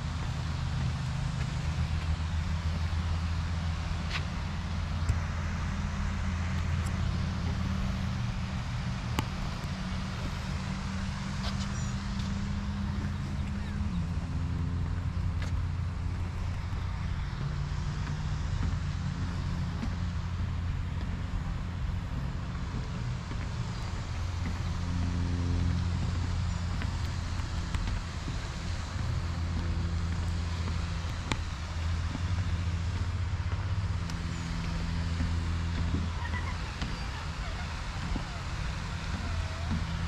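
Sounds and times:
road traffic hum: 0:00.0 - 0:40.0.

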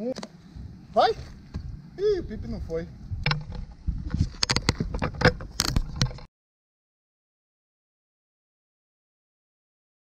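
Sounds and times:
low rumble: 0:00.4 - 0:06.0.

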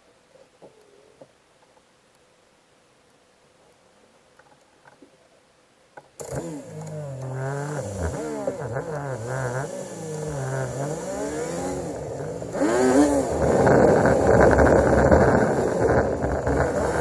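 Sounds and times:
vehicle engine running: 0:06.2 - 0:17.0
wind noise on microphone: 0:12.5 - 0:17.0.

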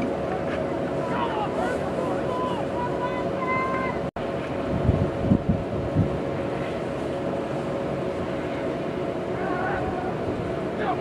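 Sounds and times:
distant voices calling out: 0:00.0 - 0:04.1, 0:06.4 - 0:11.0
wind rumbling on microphone: 0:00.0 - 0:11.0.

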